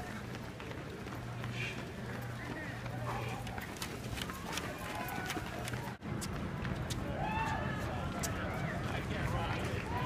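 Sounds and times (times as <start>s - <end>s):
running footsteps on asphalt: 0.0s - 10.0s.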